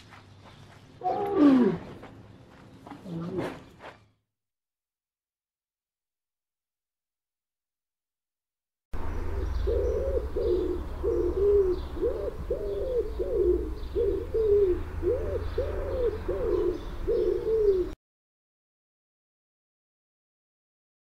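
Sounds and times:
small birds chirping: 0.0 - 4.1, 9.0 - 18.0
pigeons cooing: 1.0 - 2.0, 9.0 - 18.0.

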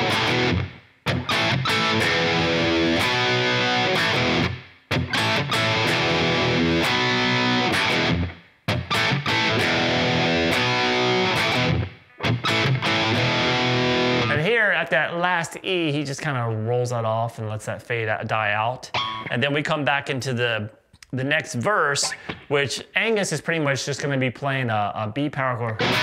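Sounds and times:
distorted electric guitar riff: 0.0 - 14.5, 18.9 - 19.4, 25.8 - 26.0.

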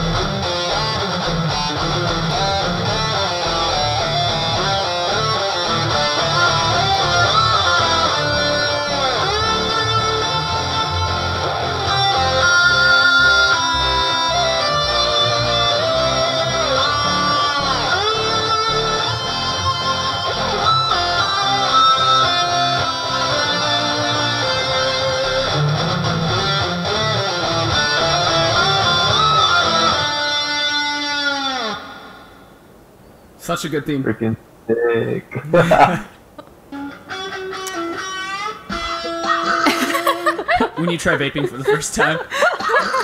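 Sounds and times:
electric guitar lead melody: 0.0 - 32.5, 36.7 - 43.0.

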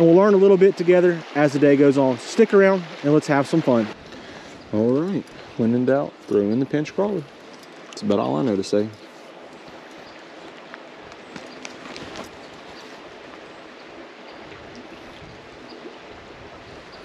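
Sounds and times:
creek water rushing: 0.0 - 17.0.

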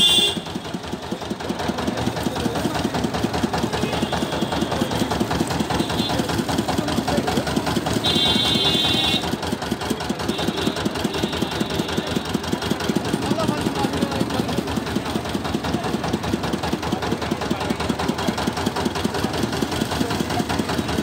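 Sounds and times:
juice crusher engine chugging: 0.0 - 21.0.

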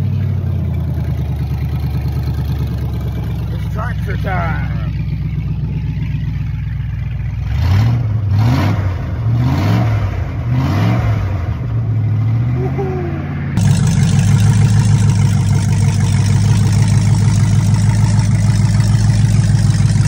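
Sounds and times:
engine idling and revving: 0.0 - 20.0.

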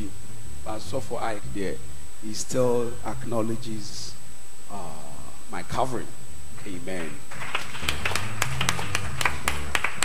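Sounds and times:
sharp hand claps: 7.0 - 10.0
low sustained bass notes: 7.8 - 10.0.

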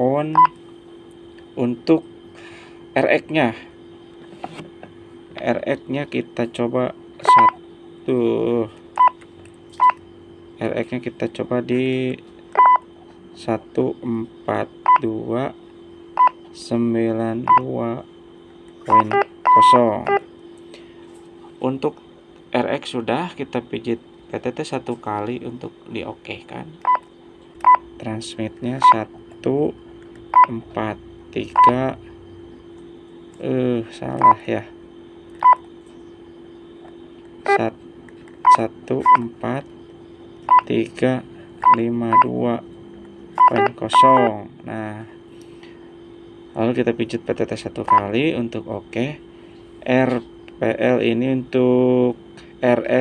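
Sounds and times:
radio keypad beeps: 0.3 - 0.5, 7.2 - 7.6, 12.6 - 12.8, 18.9 - 20.2, 28.8 - 29.0, 31.5 - 31.8, 35.4 - 35.6, 38.4 - 39.2, 40.5 - 40.7, 41.6 - 42.3, 43.4 - 44.3.

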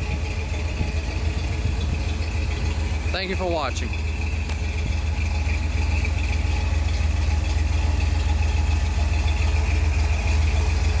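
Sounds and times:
engine idling with low throb: 0.0 - 11.0.

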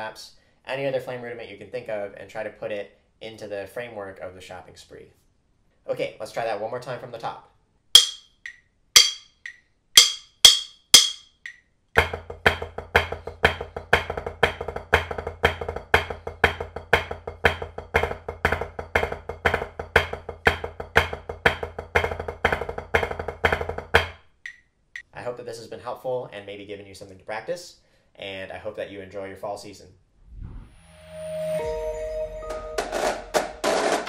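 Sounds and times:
drumstick count-in clicks: 8.0 - 11.7, 24.4 - 25.1
drumsticks on practice pad: 8.0 - 11.7.

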